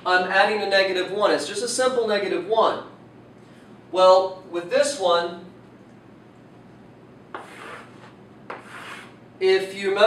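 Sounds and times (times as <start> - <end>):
chalk scraping on chalkboard: 7.3 - 9.2
chalk tapping board: 7.3 - 9.2.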